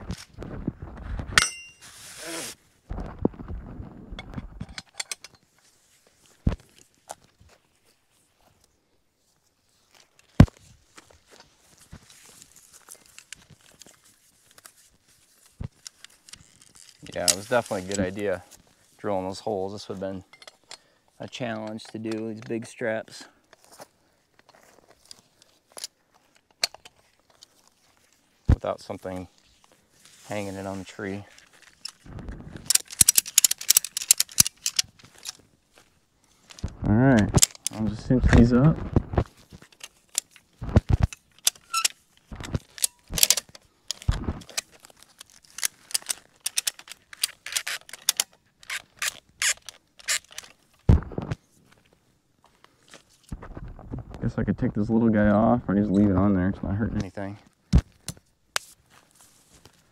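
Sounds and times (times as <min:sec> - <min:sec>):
strap webbing rustling: 0:01.4 - 0:02.6, 0:09.6 - 0:20.7, 0:23.4 - 0:38.0, 0:38.6 - 0:53.5
metal strap hardware rattling: 0:04.2 - 0:05.4, 0:15.8 - 0:18.2, 0:31.3 - 0:35.4, 0:37.3 - 0:37.9, 0:39.6 - 0:42.0, 0:42.6 - 0:50.6.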